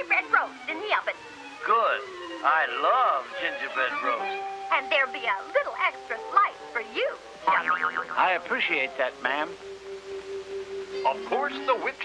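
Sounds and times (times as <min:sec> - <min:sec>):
background music score: 0:00.0 - 0:12.0
cartoon character voices talking: 0:04.8 - 0:09.0.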